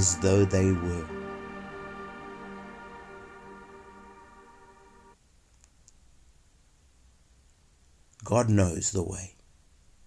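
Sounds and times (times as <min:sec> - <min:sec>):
soft background music: 0:00.0 - 0:05.2.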